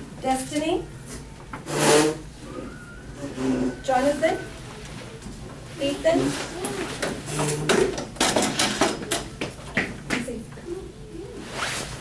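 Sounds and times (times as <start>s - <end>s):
chair scraping across floor: 1.6s - 4.4s, 5.8s - 8.8s.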